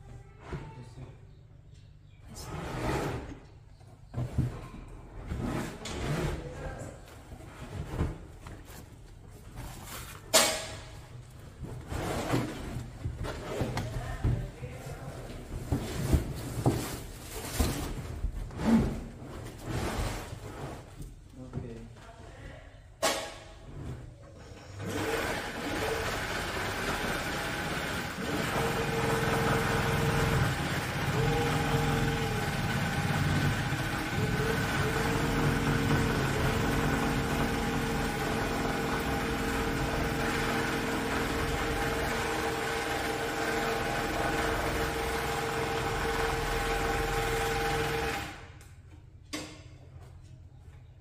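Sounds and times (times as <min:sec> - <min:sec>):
carpet overlocking machine running: 0:24.8 - 0:48.6.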